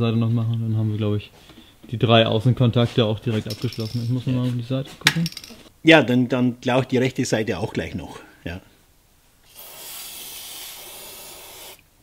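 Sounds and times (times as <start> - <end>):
aerosol spray hissing: 9.5 - 11.9.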